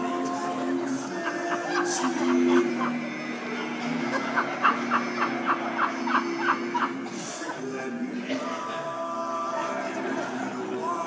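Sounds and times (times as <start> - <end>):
male quartet holding low chord: 0.0 - 11.0.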